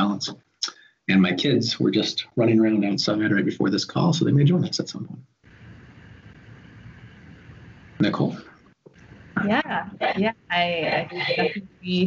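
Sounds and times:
faint steady background hiss: 0.0 - 12.0.

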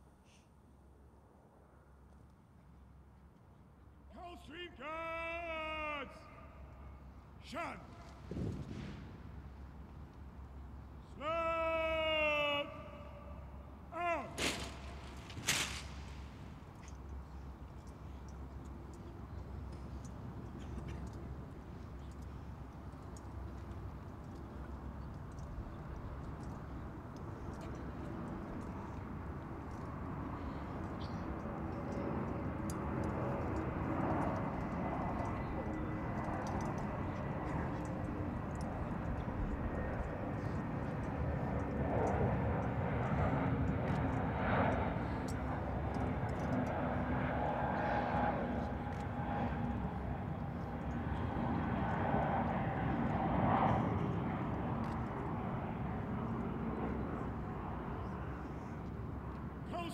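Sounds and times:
aircraft engine rumble: 5.5 - 59.9.

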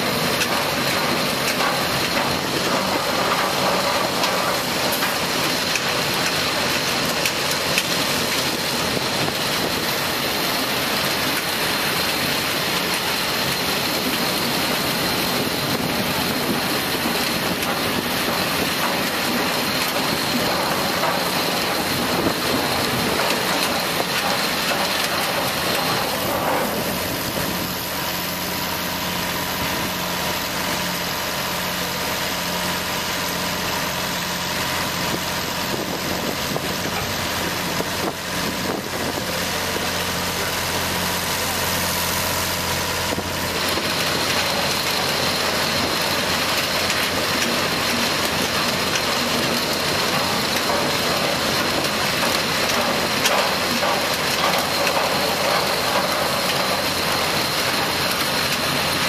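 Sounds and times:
diesel engine running: 0.0 - 59.0
high steady whine: 0.0 - 59.0.

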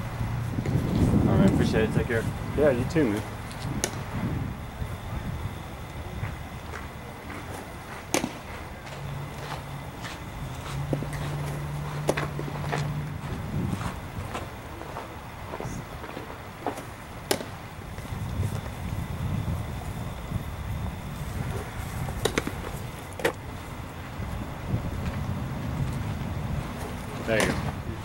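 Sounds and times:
steady low hum: 0.0 - 28.0
baseball smacking into glove: 7.6 - 8.5, 17.2 - 17.5, 27.4 - 27.7.

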